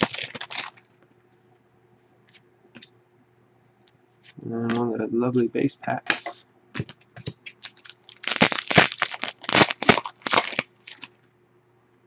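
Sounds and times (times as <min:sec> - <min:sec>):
foil wrapper tearing and crinkling: 0:00.0 - 0:00.9, 0:07.4 - 0:11.2.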